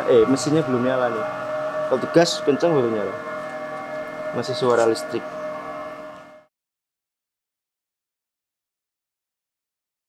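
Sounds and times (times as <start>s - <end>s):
electric motor hum: 0.0s - 6.5s.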